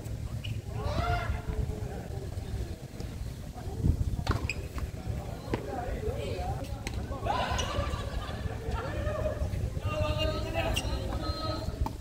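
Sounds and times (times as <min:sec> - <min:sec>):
voices chattering: 0:00.0 - 0:12.0
wind rumble on microphone: 0:00.0 - 0:12.0
tennis ball struck with racquet: 0:04.2 - 0:04.5.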